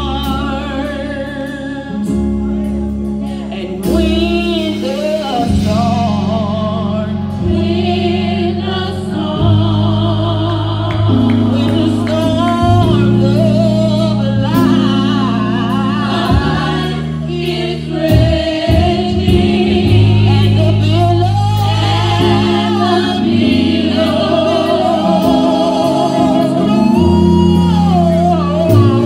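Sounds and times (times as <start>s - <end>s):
sustained low chords: 0.0s - 29.0s
women singing gospel: 0.0s - 29.0s.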